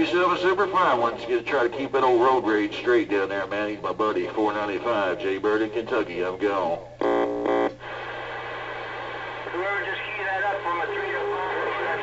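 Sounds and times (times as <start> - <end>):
radio static hiss: 0.0 - 12.0
distorted voice through radio speaker: 9.4 - 12.0.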